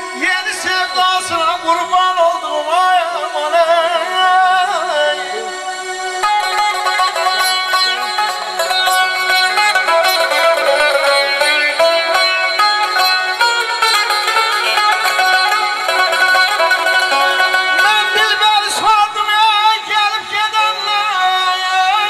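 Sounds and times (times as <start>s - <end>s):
bowed string instrument: 0.0s - 22.0s
plucked lute runs: 6.2s - 19.5s.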